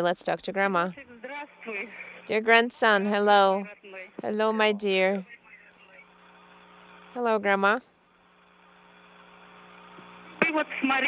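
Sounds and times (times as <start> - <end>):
faint electrical hum with tones: 0.0 - 11.0.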